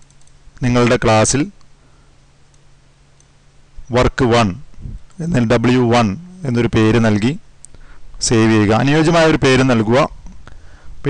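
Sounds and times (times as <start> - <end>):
computer mouse clicks: 0.0 - 0.4
low steady hum: 0.0 - 11.0
man's voice: 5.2 - 7.4.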